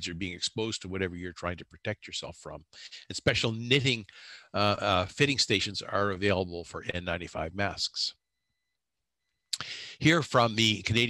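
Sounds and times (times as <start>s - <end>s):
lecturer speaking into microphone: 0.0s - 8.1s, 9.6s - 11.0s.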